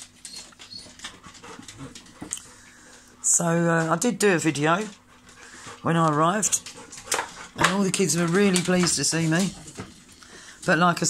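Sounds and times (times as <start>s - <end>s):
dogs scuffling: 0.0s - 11.0s
dogs panting: 0.1s - 10.9s
claws clicking on wooden floor: 6.0s - 10.2s.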